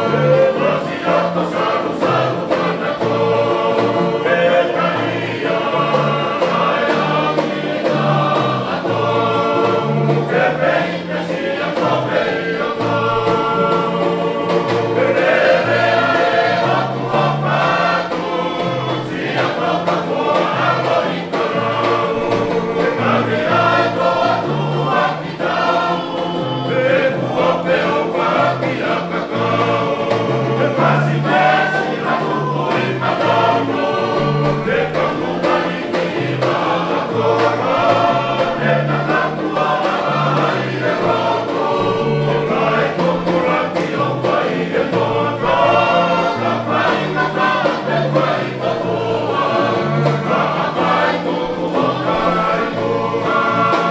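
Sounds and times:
men singing in chorus: 0:00.0 - 0:53.9
strummed guitars and ukuleles: 0:00.0 - 0:53.9.

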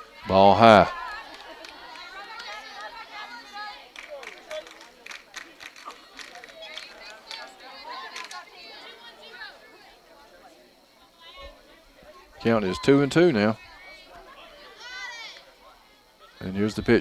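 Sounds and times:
distant voices chattering: 0:00.0 - 0:17.0
sharp clicks or claps: 0:03.9 - 0:07.4, 0:08.1 - 0:08.4.

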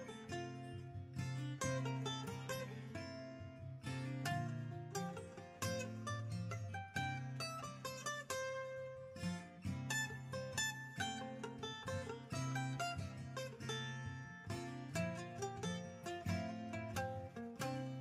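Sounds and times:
plucked acoustic string music: 0:00.0 - 0:18.0.

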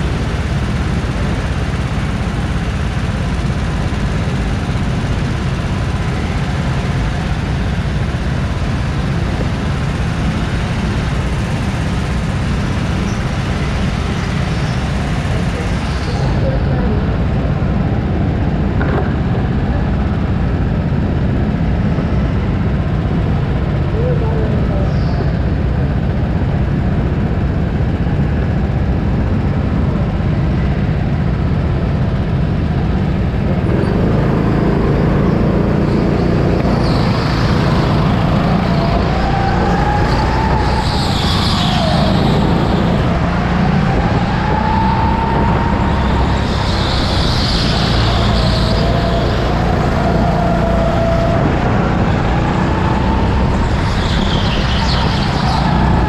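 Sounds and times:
go-kart motor whining: 0:33.0 - 0:56.0
high tyre squeals: 0:33.6 - 0:56.0.

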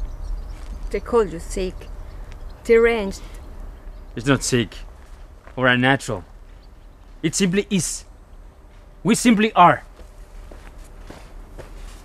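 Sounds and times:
low steady rumble: 0:00.0 - 0:12.0
footsteps on leafy ground: 0:04.8 - 0:07.3, 0:09.8 - 0:12.0.

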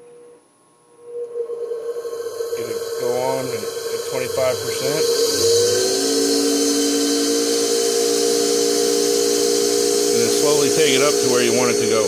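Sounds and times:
grinder motor whine: 0:00.0 - 0:12.0.

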